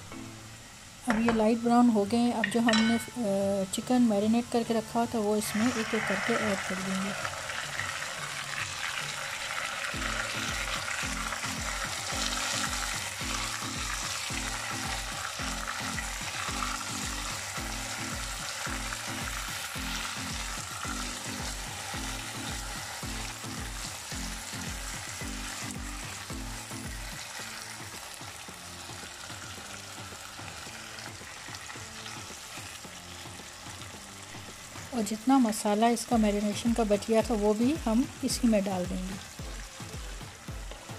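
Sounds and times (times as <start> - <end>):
chicken sizzling in a wok: 0.0 - 40.9.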